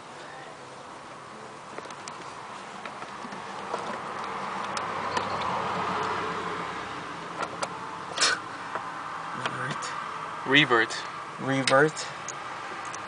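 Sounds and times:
vehicle hum passing: 1.2 - 11.4, 12.0 - 13.0.

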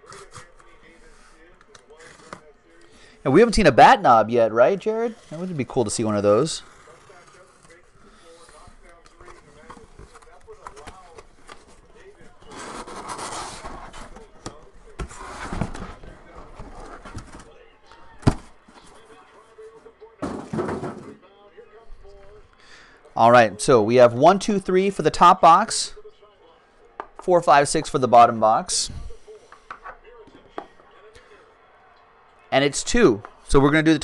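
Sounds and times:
cardboard rustling and scraping: 9.2 - 17.5.

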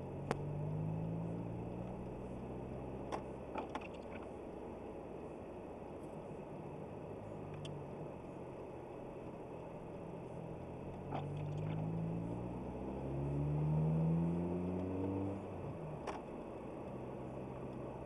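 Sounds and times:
car engine accelerating: 0.0 - 3.3, 10.7 - 18.0.

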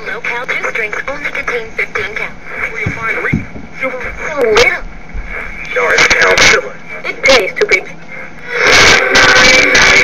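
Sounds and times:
voice from small radio speaker: 0.0 - 10.0.

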